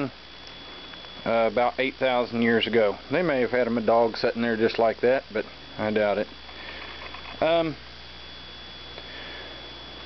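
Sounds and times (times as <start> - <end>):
high-pitched whine: 0.0 - 10.0
low background hiss: 0.0 - 10.0.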